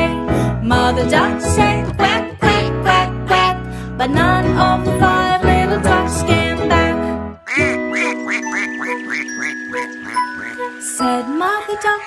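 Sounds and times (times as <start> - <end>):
cartoon duck quacking: 7.4 - 10.6.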